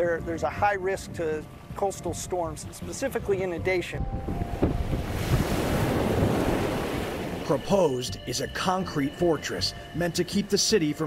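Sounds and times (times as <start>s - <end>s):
large waves breaking: 4.0s - 8.0s.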